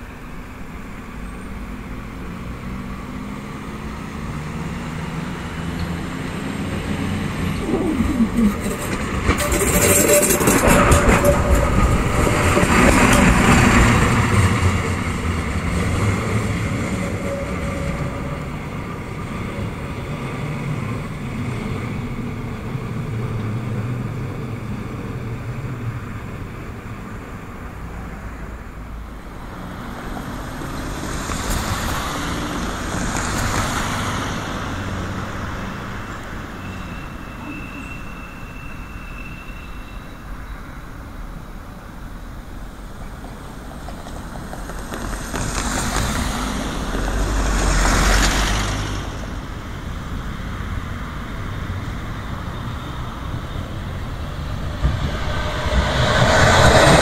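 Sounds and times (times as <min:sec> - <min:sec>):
diesel railcar passing: 0:00.0 - 0:57.0.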